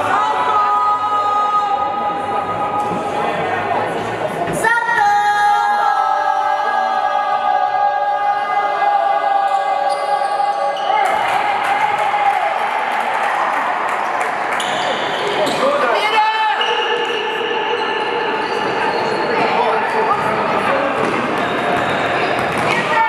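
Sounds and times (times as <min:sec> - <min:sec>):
spectators' voices echoing: 0:00.0 - 0:23.0.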